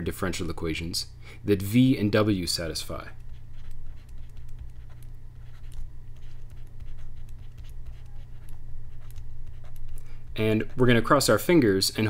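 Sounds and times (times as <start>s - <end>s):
steady low hum: 0.0s - 12.0s
stylus ticking on pen tablet: 3.0s - 11.3s.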